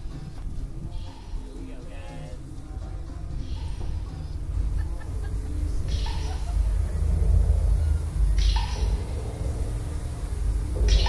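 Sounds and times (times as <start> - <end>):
low rumble: 0.0 - 11.0.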